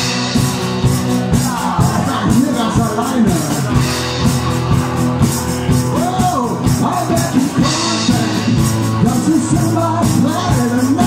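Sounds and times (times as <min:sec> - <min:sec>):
hand percussion beat with cymbal: 0:00.0 - 0:11.0
strummed guitar: 0:00.0 - 0:11.0
man singing: 0:01.2 - 0:03.9, 0:05.9 - 0:11.0.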